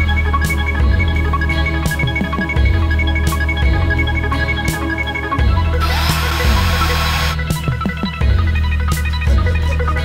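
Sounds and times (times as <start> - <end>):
background music: 0.0 - 10.0
power drill boring into chipboard: 5.8 - 7.4.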